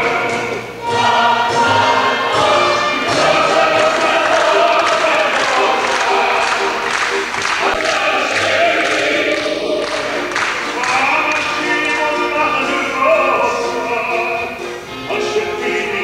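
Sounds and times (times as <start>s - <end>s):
mixed choir singing in harmony: 0.0s - 16.0s.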